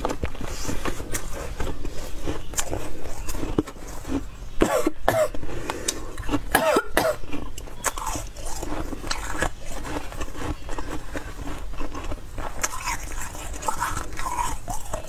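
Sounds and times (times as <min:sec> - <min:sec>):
chewing and crunching ice: 0:00.0 - 0:15.0
throat clearing: 0:04.6 - 0:05.4, 0:06.5 - 0:07.4.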